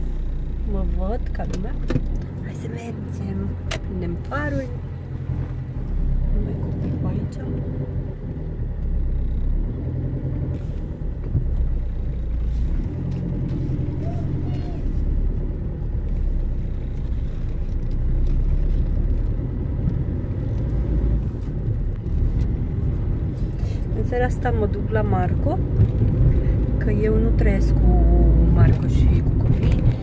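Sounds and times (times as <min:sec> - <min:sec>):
car cabin engine and road rumble: 0:00.0 - 0:30.0.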